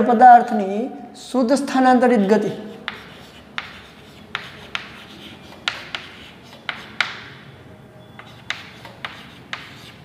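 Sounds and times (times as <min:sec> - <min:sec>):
chalk scratching on blackboard: 0:02.2 - 0:07.5, 0:08.2 - 0:10.0
chalk tapping on board: 0:02.6 - 0:07.5, 0:08.2 - 0:10.0.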